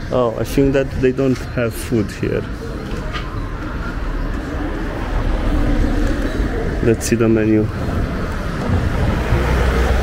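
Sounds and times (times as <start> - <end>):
street noise low rumble: 0.0 - 10.0.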